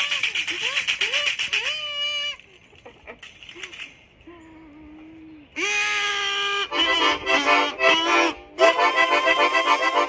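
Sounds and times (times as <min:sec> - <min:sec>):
toy accordion note: 0:06.6 - 0:10.0.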